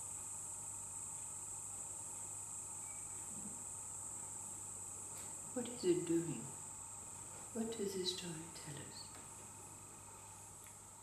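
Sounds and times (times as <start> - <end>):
crickets chirping: 0.0 - 11.0
faint low hum: 0.0 - 11.0.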